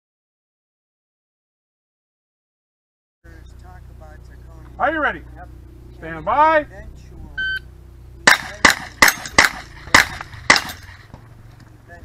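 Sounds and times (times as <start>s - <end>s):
shot timer beep: 7.4s - 7.7s
gunshots: 8.2s - 11.2s.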